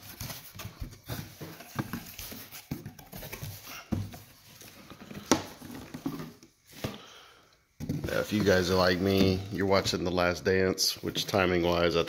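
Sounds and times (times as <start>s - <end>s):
cardboard flaps rustling and scraping: 0.0s - 7.0s, 7.8s - 10.1s.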